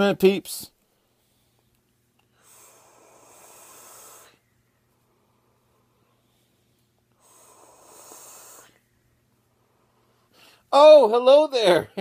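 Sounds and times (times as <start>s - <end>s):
airy hiss of air through atomizer: 2.3s - 4.4s, 7.1s - 8.8s.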